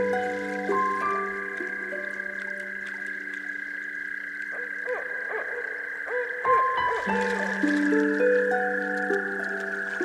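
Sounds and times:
frog chorus: 0.0 - 10.0
rising and falling frog calls: 0.0 - 10.0
soft relaxation music drone: 0.0 - 10.0.

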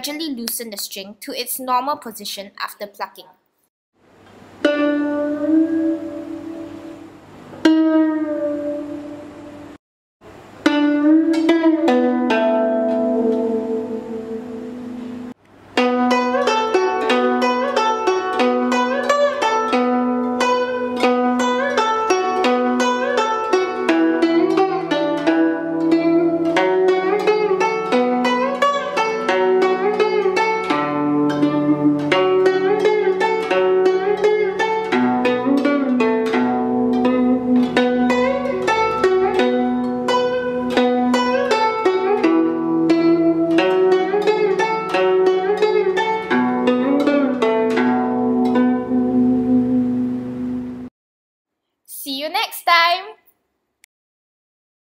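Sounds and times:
plucked zither melody: 4.6 - 9.7, 10.6 - 50.8
zither notes bent in pitch: 4.6 - 9.7, 10.6 - 50.9.

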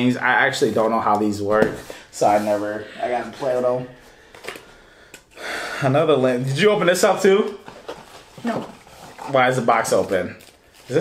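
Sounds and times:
man talking: 0.0 - 4.0, 5.8 - 7.6, 9.2 - 11.0.

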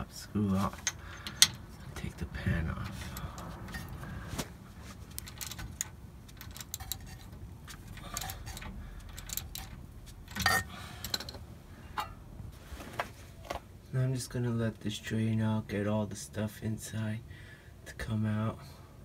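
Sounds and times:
metal tools clinking: 0.6 - 2.2, 2.9 - 4.1, 5.0 - 12.2
metal clatter: 0.6 - 12.2
hand ratchet clicking: 0.8 - 1.7, 5.1 - 11.4.

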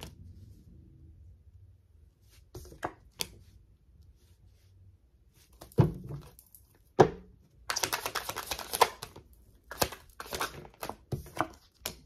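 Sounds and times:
cards being shuffled: 7.7 - 12.0.

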